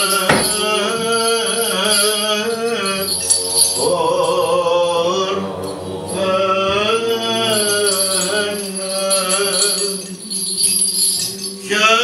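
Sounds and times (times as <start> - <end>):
censer bells jingling: 0.0 - 12.0
chant in long held notes: 0.0 - 12.0.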